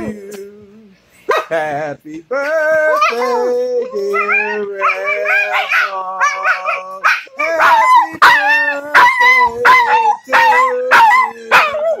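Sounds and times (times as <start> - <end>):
dog howling in wavering yowls: 2.9 - 12.0.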